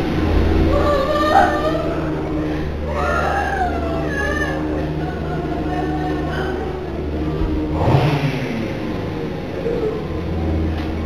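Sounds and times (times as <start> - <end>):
low drone and hum: 0.0 - 11.0
wavering wail-like cries: 0.1 - 8.0, 9.2 - 10.6.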